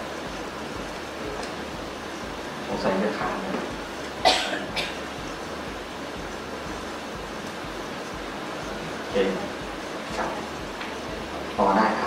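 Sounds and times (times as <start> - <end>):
steady room hum: 0.0 - 12.0
person coughing: 4.2 - 5.0.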